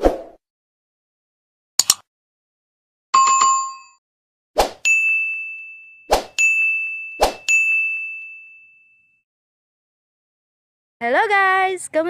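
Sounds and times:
bright ding: 4.9s - 9.2s.

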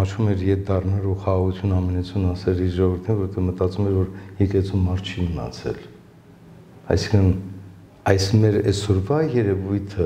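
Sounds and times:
man speaking: 0.0s - 6.0s, 6.8s - 10.0s.

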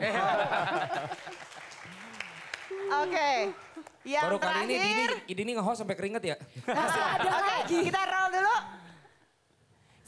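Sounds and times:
audience applauding lightly: 0.6s - 4.1s.

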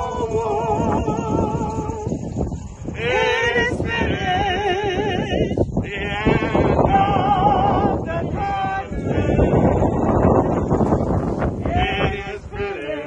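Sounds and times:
hymn singing with vibrato: 0.0s - 13.0s.

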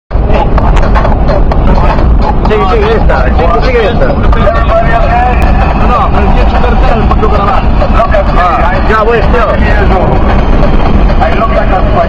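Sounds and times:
car road and engine rumble: 0.1s - 12.0s.

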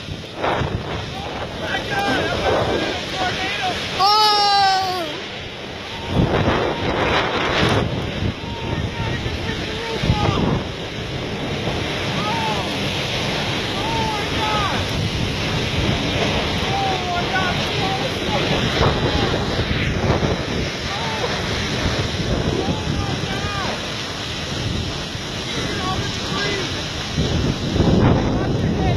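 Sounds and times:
wind buffeting microphone: 0.0s - 28.9s.

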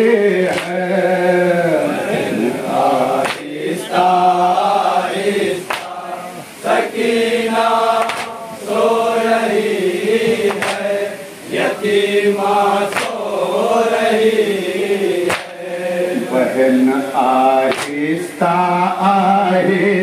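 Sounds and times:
men chanting a lament: 0.0s - 20.0s
hands slapping chests: 0.5s - 0.8s, 3.2s - 3.5s, 5.6s - 6.0s, 8.0s - 8.4s, 10.5s - 10.9s, 12.9s - 13.2s, 15.3s - 15.6s, 17.7s - 18.0s.

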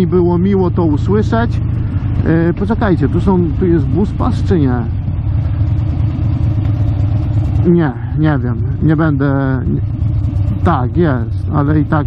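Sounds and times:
motorcycle engine running at low revs: 0.0s - 12.0s.

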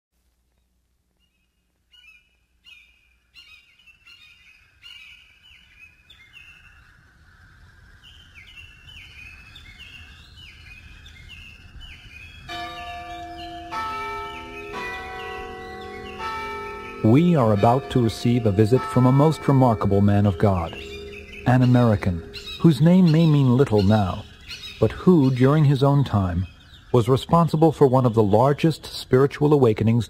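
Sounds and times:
soft outdoor hiss: 0.2s - 30.0s
birds chirping: 1.2s - 30.0s
church bell tolling: 12.5s - 26.4s.

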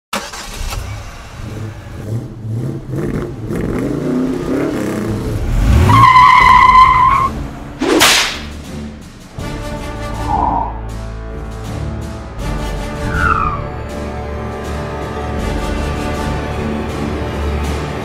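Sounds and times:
car engine revving: 0.2s - 9.2s
theme music: 4.0s - 18.0s.

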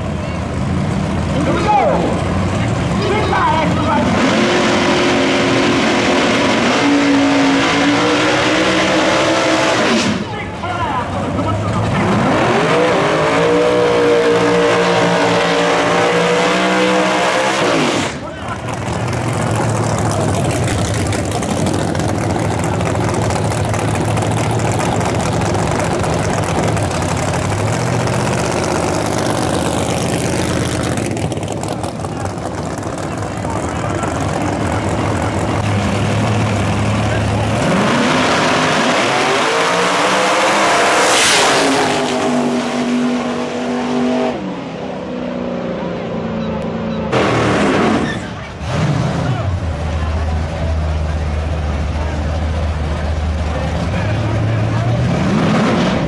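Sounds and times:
engine rumbling at low revs: 0.0s - 56.0s
race car engine revving: 0.4s - 56.0s.

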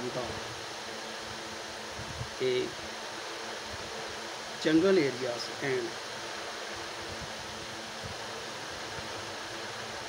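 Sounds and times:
man speaking short words: 4.6s - 5.9s.

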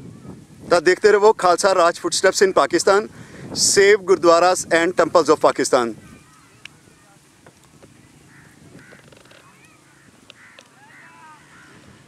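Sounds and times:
birds calling: 1.1s - 12.0s.

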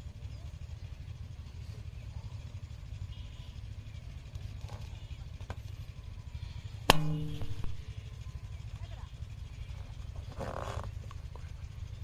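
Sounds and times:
steady low rumble: 6.0s - 10.2s.

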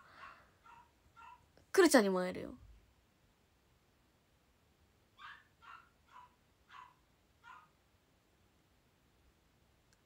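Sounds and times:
dog barking faintly: 0.0s - 1.5s, 5.2s - 7.8s.

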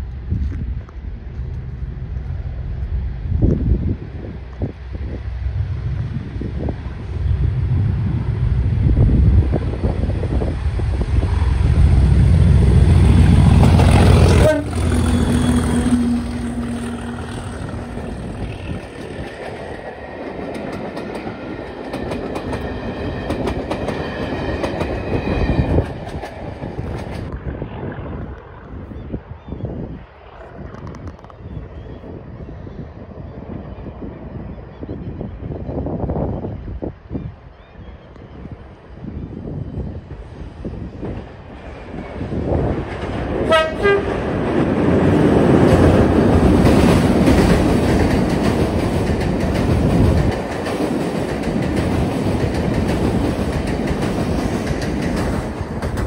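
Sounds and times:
wind noise: 0.0s - 56.0s
clattering train wheels: 12.4s - 27.3s, 41.0s - 56.0s.

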